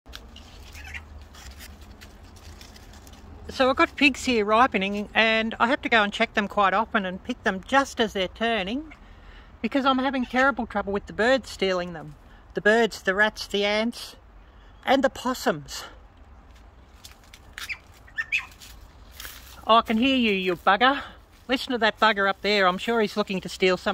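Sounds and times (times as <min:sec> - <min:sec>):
leaves rustling: 0:00.1 - 0:05.8, 0:16.3 - 0:23.9
high-pitched animal call: 0:00.6 - 0:01.1, 0:17.6 - 0:18.6.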